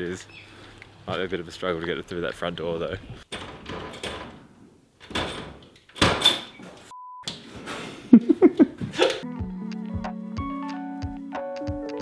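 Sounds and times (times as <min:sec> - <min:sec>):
door opening: 0:03.3 - 0:08.0
piano-like keyboard music with beat: 0:09.2 - 0:12.0.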